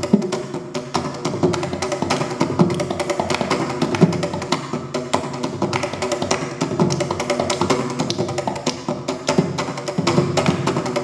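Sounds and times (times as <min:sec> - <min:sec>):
hand drum playing fast: 0:00.0 - 0:11.0.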